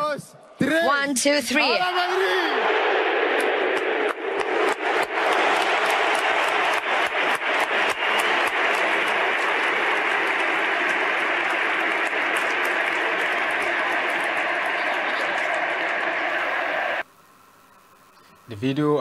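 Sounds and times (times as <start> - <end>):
stadium crowd cheering: 1.5 - 17.1
crowd chanting: 1.7 - 17.0.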